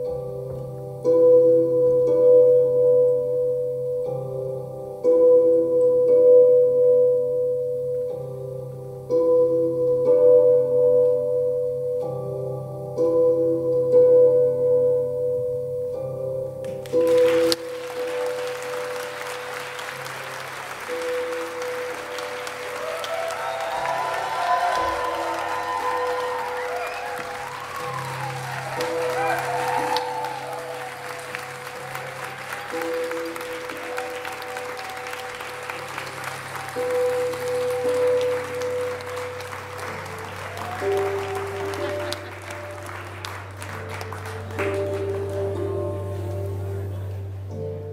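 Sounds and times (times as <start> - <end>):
audience applauding: 16.6 - 46.4
cheering voices: 17.0 - 45.6
sustained musical drone: 23.6 - 47.9.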